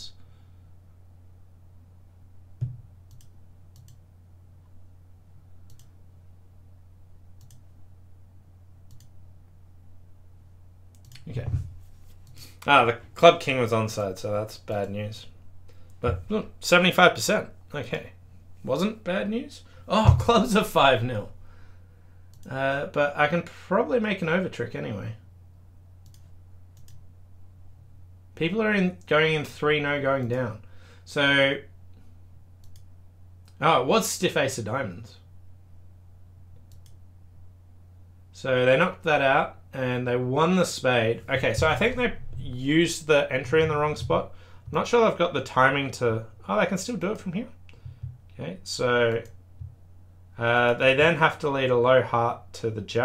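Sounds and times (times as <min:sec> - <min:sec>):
steady low hum: 0:00.0 - 0:53.0
computer mouse clicks: 0:02.6 - 0:04.0, 0:05.7 - 0:05.9, 0:07.4 - 0:07.6, 0:08.9 - 0:09.2, 0:10.9 - 0:11.3, 0:22.3 - 0:22.6, 0:26.0 - 0:27.0, 0:32.6 - 0:33.6, 0:36.6 - 0:37.0.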